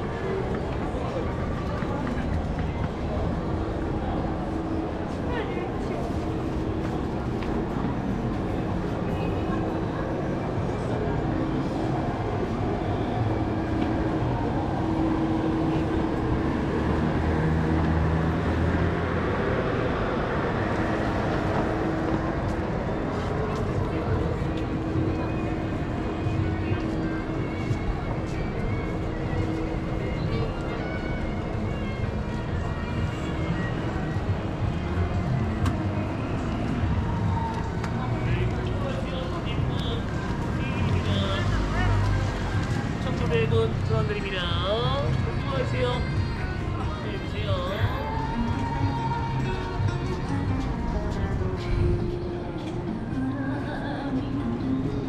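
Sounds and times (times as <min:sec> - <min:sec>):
music playing from shops: 0:00.0 - 0:55.0
passers-by talking: 0:00.0 - 0:55.0.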